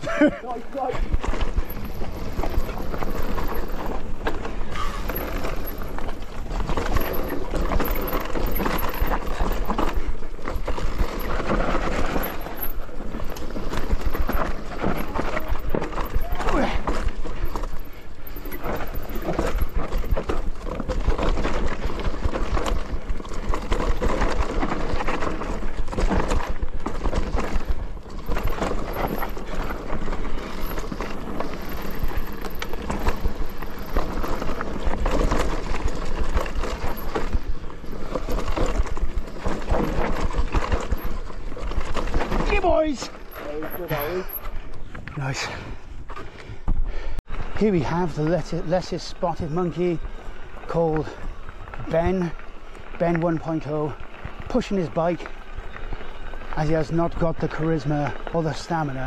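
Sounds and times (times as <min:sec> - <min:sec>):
bike rattling and clattering: 0:00.0 - 0:59.0
bike tyres over roots and stones: 0:00.0 - 0:59.0.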